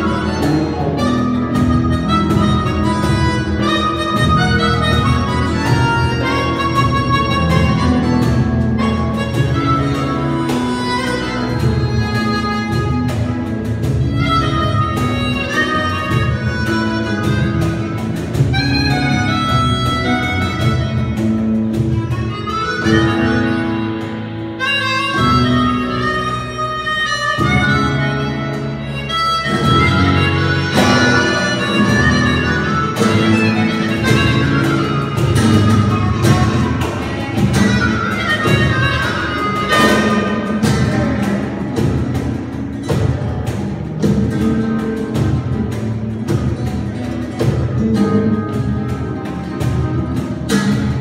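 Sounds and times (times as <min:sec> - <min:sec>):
electric bass: 0:00.0 - 0:51.0
flamenco guitar: 0:00.0 - 0:51.0
hand percussion: 0:00.0 - 0:51.0
harmonica melody: 0:00.0 - 0:51.0.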